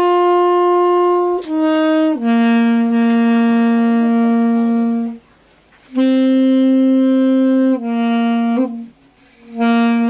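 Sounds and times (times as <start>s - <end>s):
saxophone holding a low note: 0.0s - 5.2s, 5.9s - 10.0s.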